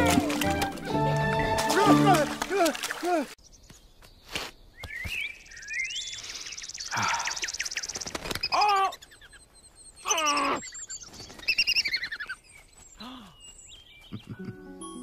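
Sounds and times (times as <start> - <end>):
birds chirping and trilling: 2.9 - 14.8.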